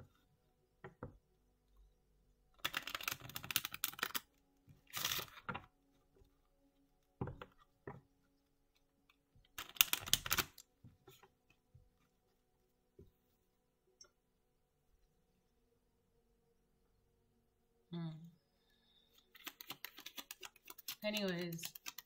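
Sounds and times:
cards being shuffled: 2.6s - 4.3s, 4.9s - 5.6s, 9.6s - 11.3s, 19.2s - 22.0s.

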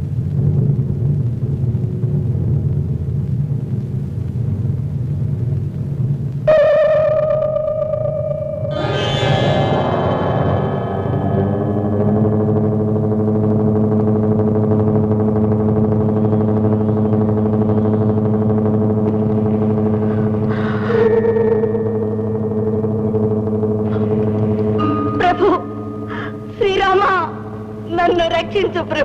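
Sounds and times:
low soundtrack drone: 0.0s - 29.0s
wavering higher tone: 6.5s - 28.7s.

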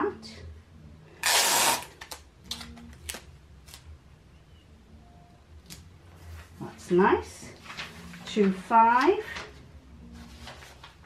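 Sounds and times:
paper rustling: 7.5s - 9.6s, 10.2s - 11.0s.

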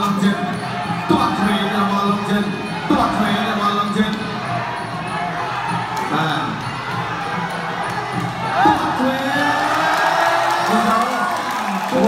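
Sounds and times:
crowd noise: 0.0s - 12.0s
ringside drums beating: 0.0s - 12.0s.

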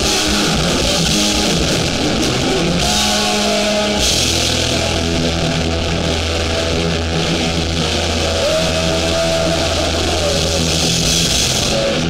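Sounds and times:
bass holding low notes: 0.0s - 12.0s
distorted electric guitar: 0.0s - 12.0s
rising guitar tone: 0.0s - 12.0s.

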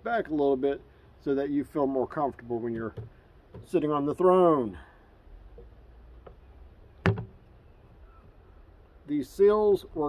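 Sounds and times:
plastic toilet seat knock: 7.0s - 7.4s.

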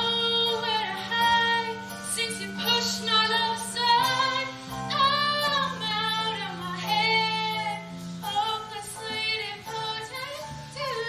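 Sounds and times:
woman singing with vibrato: 0.0s - 11.0s.

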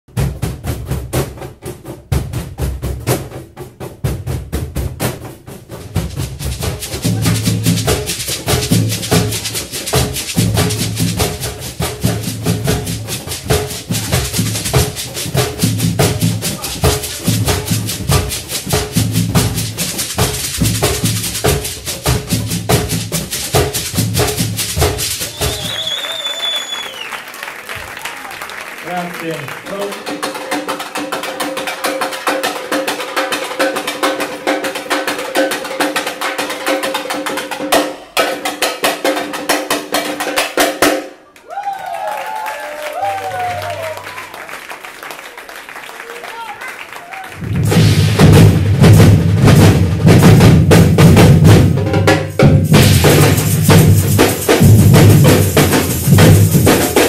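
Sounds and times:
cajons slapping: 0.1s - 57.0s
deep bass drum pattern: 3.9s - 25.2s, 47.4s - 57.0s.

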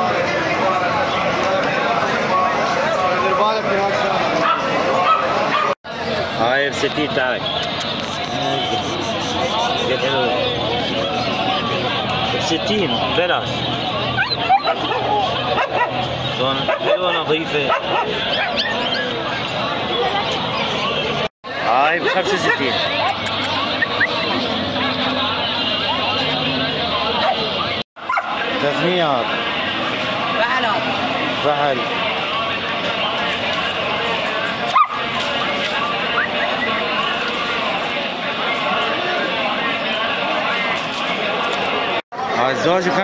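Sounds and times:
crowd chatter: 0.0s - 43.0s
people's voices: 0.0s - 43.0s
dog yipping and whimpering: 14.2s - 15.9s, 16.7s - 19.5s.

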